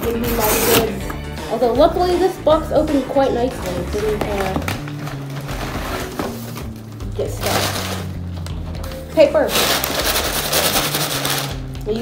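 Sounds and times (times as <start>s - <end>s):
packing paper crumpling: 3.6s - 8.3s, 9.5s - 11.8s.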